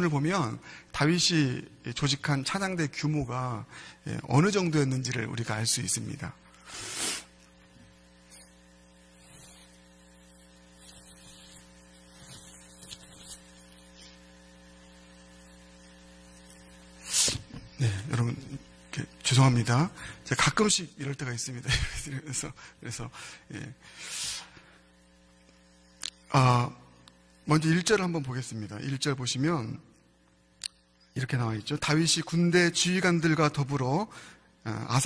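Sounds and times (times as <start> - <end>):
electrical mains hum: 0.0 - 35.0
microphone handling sounds: 17.2 - 17.8.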